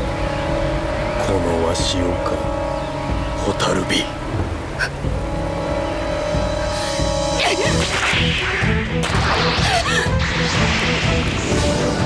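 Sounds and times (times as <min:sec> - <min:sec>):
dramatic soundtrack drone: 0:00.0 - 0:12.0
sharp strikes: 0:04.3 - 0:12.0.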